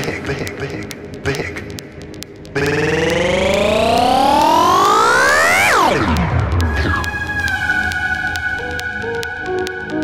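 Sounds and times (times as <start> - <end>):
synthesizer riser gliding upward: 2.6 - 9.1.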